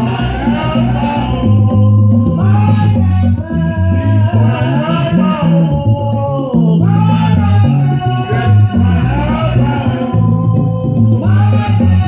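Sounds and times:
congas: 0:00.0 - 0:12.0
electric bass: 0:00.0 - 0:12.0
person singing: 0:00.0 - 0:12.0.

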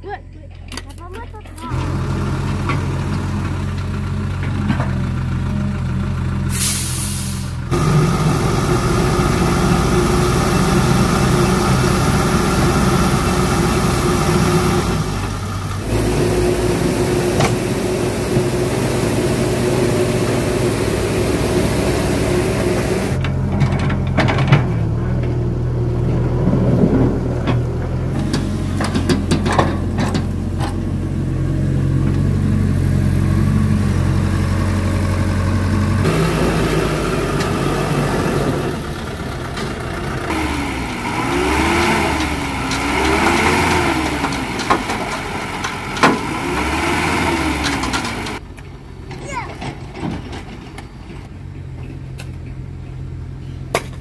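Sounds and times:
diesel engines running: 0:00.0 - 0:54.0
engine pitch rising and falling: 0:06.1 - 0:48.4
knocks and clanks: 0:23.2 - 0:25.4, 0:26.0 - 0:31.0, 0:41.8 - 0:48.4, 0:49.0 - 0:52.6.

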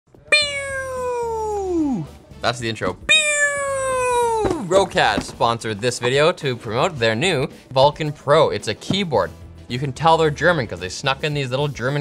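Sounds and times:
man making a descending tone: 0:00.4 - 0:02.1, 0:03.2 - 0:04.7.

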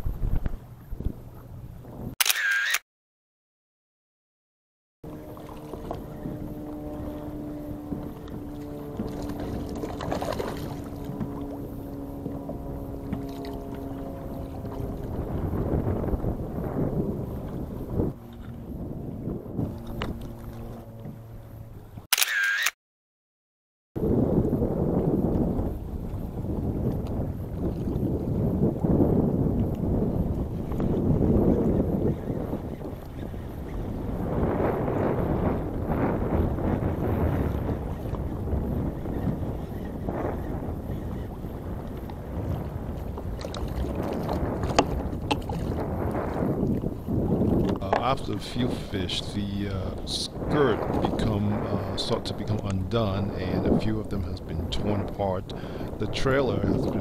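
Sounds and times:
wind on microphone: 0:00.0 - 0:02.3, 0:05.0 - 0:22.1, 0:24.0 - 0:57.0
water washing against kayak hull: 0:05.1 - 0:22.1, 0:24.0 - 0:57.0
steady humming tones: 0:05.1 - 0:22.6.

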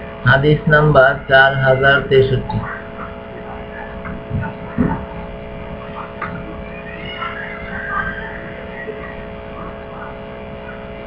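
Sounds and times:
steady tonal hum: 0:00.0 - 0:11.0.

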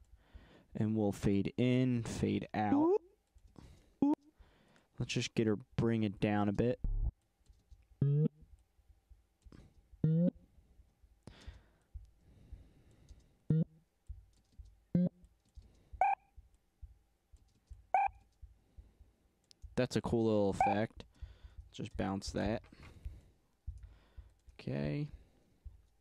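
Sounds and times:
synthesized pitched blips: 0:13.5 - 0:13.8, 0:16.0 - 0:16.2, 0:18.0 - 0:18.2.

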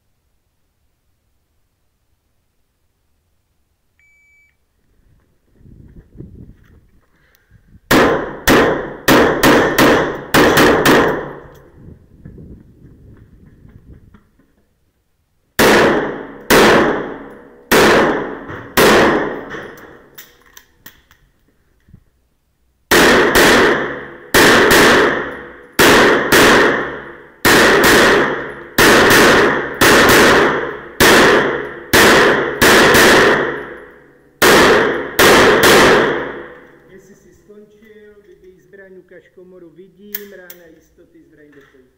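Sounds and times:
pistol shots indoors: 0:07.9 - 0:11.5, 0:15.6 - 0:20.0, 0:22.9 - 0:36.7.

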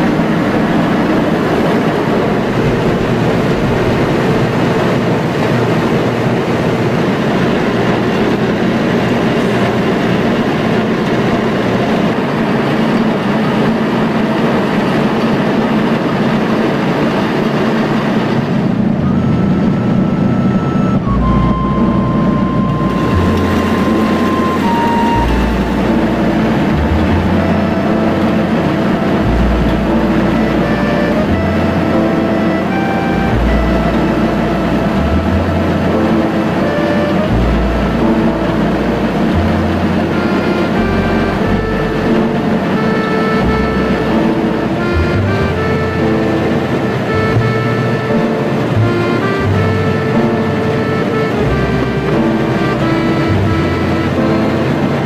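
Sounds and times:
slow background music: 0:00.0 - 0:55.0
grain mill running: 0:21.1 - 0:47.2
grain pouring from chute: 0:22.8 - 0:45.3.

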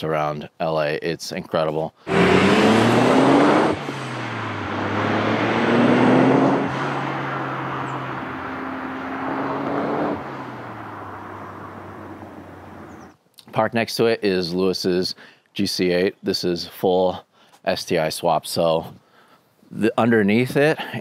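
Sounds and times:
car engine accelerating hard: 0:02.1 - 0:13.1.

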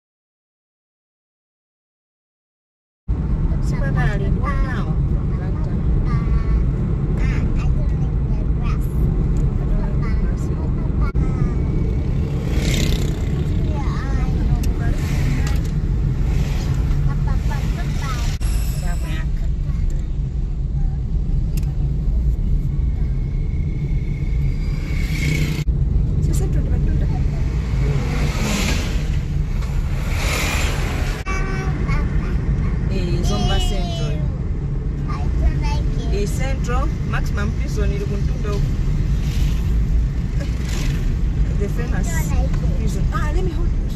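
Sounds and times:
car driving low rumble: 0:03.1 - 0:43.9
people talking: 0:03.5 - 0:11.9, 0:13.5 - 0:15.7, 0:17.0 - 0:20.1, 0:26.2 - 0:28.1, 0:31.2 - 0:34.4, 0:35.1 - 0:38.7, 0:41.5 - 0:43.9.

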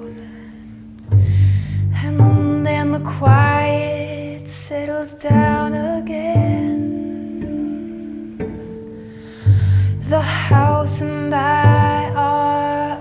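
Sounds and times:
bowed cello tones: 0:00.0 - 0:13.0
double bass plucking low notes: 0:00.0 - 0:13.0
woman singing: 0:01.9 - 0:08.5, 0:10.0 - 0:13.0.

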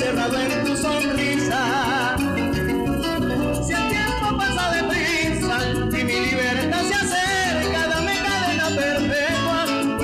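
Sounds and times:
amplified backing music: 0:00.0 - 0:10.0
man singing into microphone: 0:00.0 - 0:10.0.

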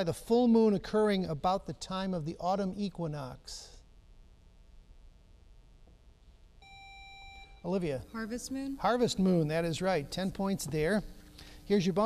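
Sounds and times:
electronic buzzer beep: 0:06.6 - 0:08.4.

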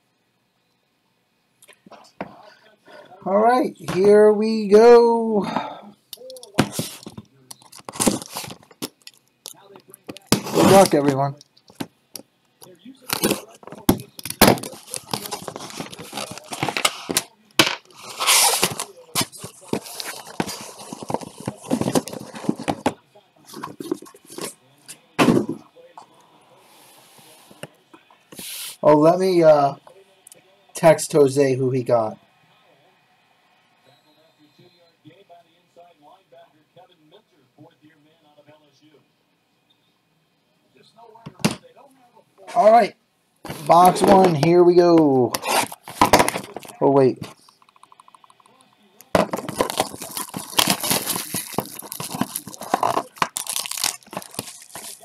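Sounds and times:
packing tape tearing: 0:06.4 - 0:09.2, 0:10.2 - 0:11.0, 0:13.0 - 0:22.9, 0:45.4 - 0:46.8, 0:49.1 - 0:55.0.

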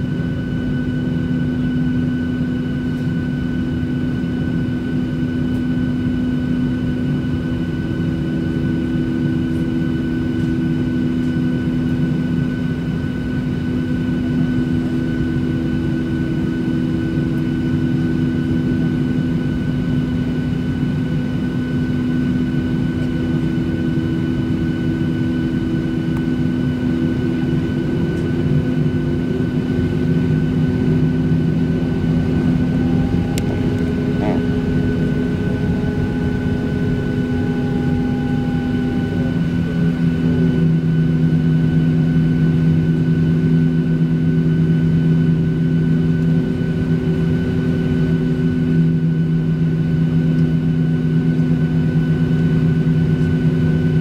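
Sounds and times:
constant whining tones: 0:00.0 - 0:54.0
jet engines idling: 0:00.0 - 0:54.0.

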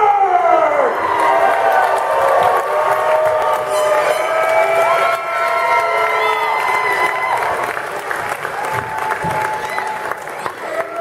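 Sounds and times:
crowd yelling and cheering: 0:00.0 - 0:11.0.

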